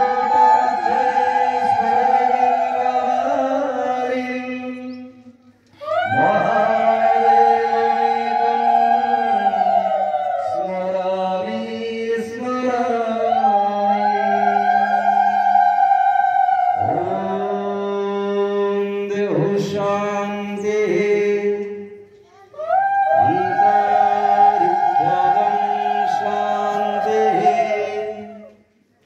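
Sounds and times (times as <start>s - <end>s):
men singing a chant: 0.0s - 5.0s, 6.0s - 15.1s, 16.7s - 21.7s, 23.2s - 28.5s
person chanting long notes: 5.8s - 11.6s.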